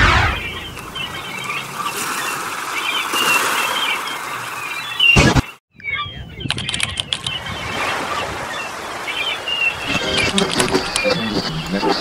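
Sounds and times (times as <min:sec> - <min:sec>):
gulls calling: 0:00.0 - 0:12.0.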